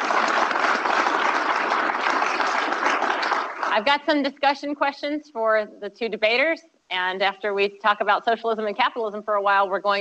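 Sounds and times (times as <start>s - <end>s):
audience applauding: 0.0s - 3.8s.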